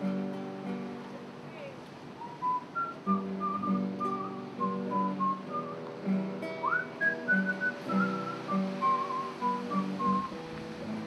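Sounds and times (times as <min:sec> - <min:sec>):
classical guitar picking: 0:00.0 - 0:11.0
person whistling a melody: 0:02.2 - 0:05.8, 0:06.6 - 0:10.4.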